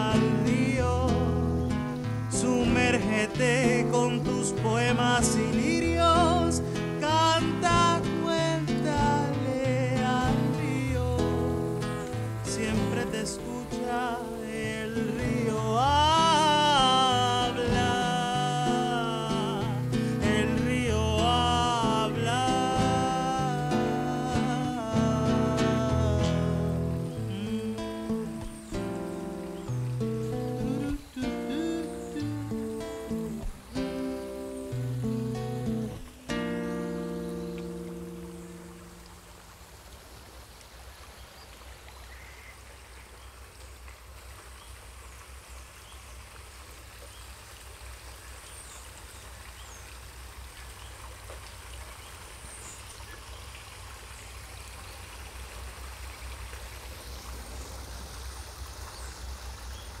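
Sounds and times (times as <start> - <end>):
acoustic guitar chords: 0.0 - 39.3
flowing stream water: 0.0 - 60.0.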